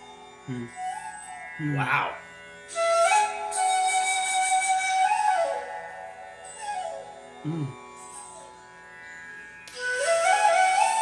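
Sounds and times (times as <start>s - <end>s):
bamboo flute long note: 0.5s - 8.4s, 9.8s - 11.0s.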